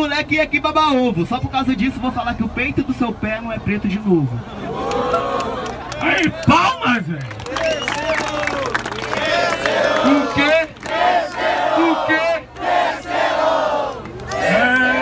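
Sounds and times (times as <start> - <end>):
crowd shouting and cheering: 4.3 - 15.0.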